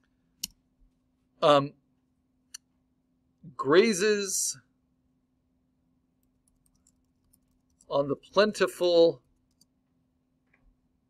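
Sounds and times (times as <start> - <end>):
computer keyboard typing: 6.4 - 7.9
person speaking: 7.9 - 9.2.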